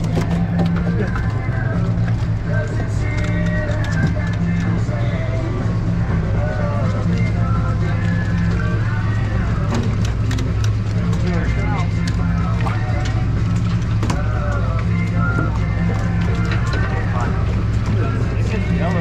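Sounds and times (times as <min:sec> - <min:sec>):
background voices: 0:00.0 - 0:19.0
boat engines droning: 0:00.0 - 0:19.0.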